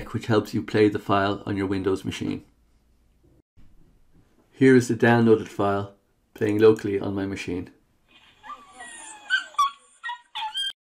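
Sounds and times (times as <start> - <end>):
dog whimpering and yelping: 8.1 - 10.8.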